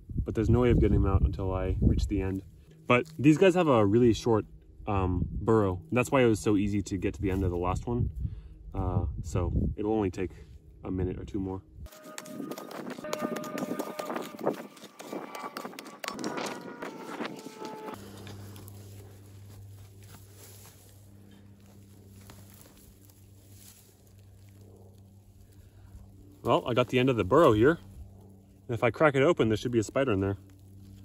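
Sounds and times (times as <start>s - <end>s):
low steady hum: 0.0s - 31.0s
mattock chipping hard soil: 11.9s - 20.4s.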